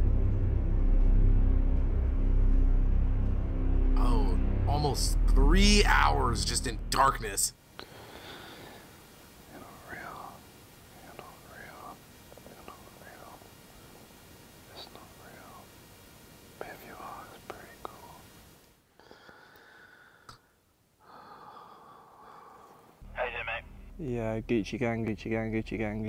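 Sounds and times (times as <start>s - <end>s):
man's voice: 4.0s - 7.5s, 23.1s - 26.0s
man whispering: 9.4s - 13.5s, 14.6s - 15.7s, 16.6s - 18.3s, 23.1s - 24.4s.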